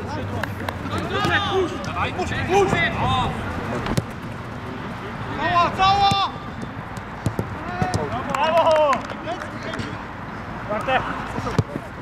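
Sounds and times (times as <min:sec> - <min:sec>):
players shouting: 0:00.8 - 0:03.5, 0:05.2 - 0:09.9
ball being kicked: 0:06.0 - 0:08.2.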